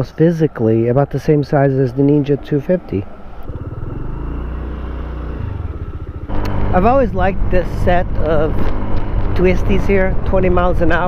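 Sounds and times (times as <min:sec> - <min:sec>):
motorbike engine idling: 0:03.0 - 0:08.5.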